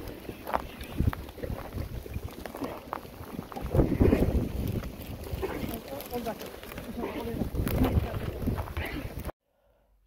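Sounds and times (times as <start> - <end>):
wind rumbling on microphone: 0.0 - 9.3.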